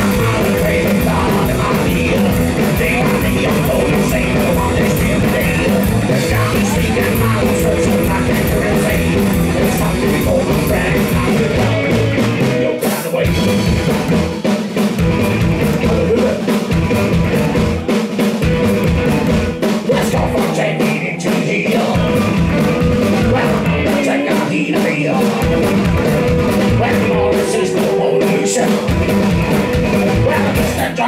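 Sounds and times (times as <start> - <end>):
upright double bass: 0.0 - 12.6, 25.5 - 27.5, 28.9 - 30.8
drum kit: 0.0 - 31.0
electric guitar: 0.0 - 31.0.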